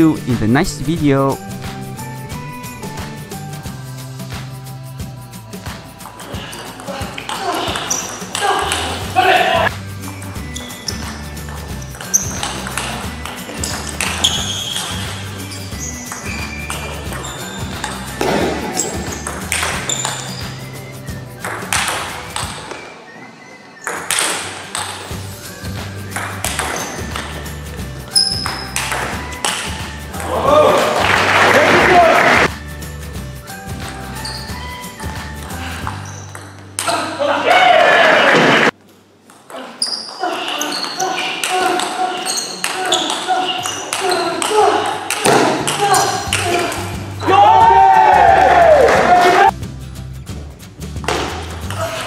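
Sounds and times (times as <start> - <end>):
background music: 0.0 - 39.2, 41.1 - 52.0
people shouting: 6.3 - 9.7, 30.1 - 32.5, 36.9 - 38.7, 40.2 - 49.5
table tennis ball clicking: 19.2 - 20.3, 21.4 - 22.6, 28.2 - 29.7.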